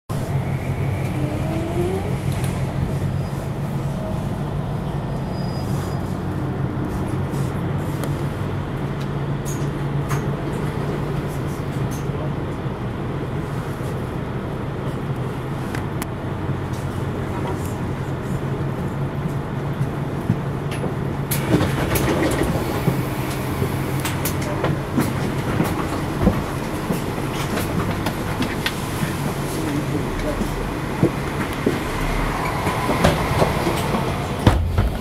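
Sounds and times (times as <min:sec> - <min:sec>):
vehicle low hum: 0:00.1 - 0:20.3.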